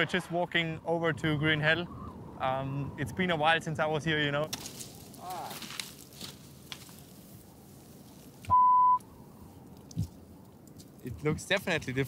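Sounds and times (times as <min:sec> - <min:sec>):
high censor bleep: 0:08.5 - 0:09.0.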